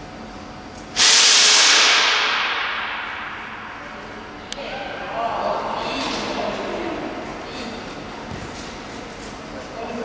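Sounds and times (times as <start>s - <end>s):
loud hiss: 1.0s - 4.0s.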